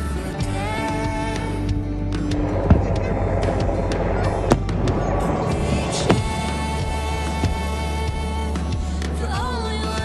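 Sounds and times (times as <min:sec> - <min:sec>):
background music: 0:00.0 - 0:10.0
loud firework bangs: 0:02.4 - 0:07.2.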